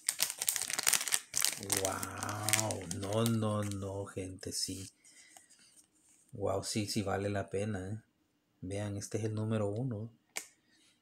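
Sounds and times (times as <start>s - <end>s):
plastic wrapper crinkling: 0.0s - 4.0s.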